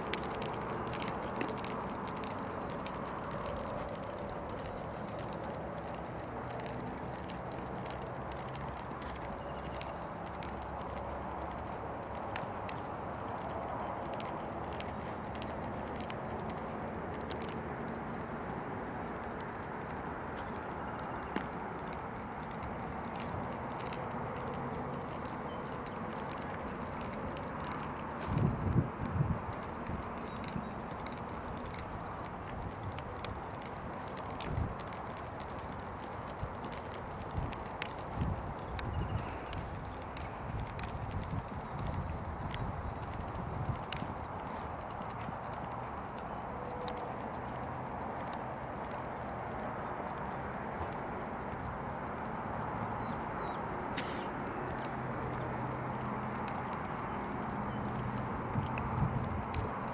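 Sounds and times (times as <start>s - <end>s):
horse hoofbeats on dirt: 0.0s - 59.9s.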